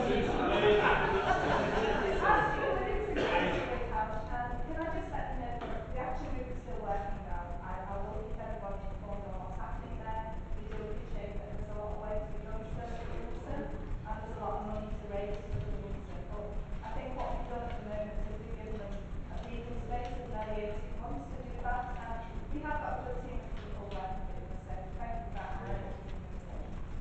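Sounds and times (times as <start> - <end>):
faint indistinct speech: 20.4 - 26.6.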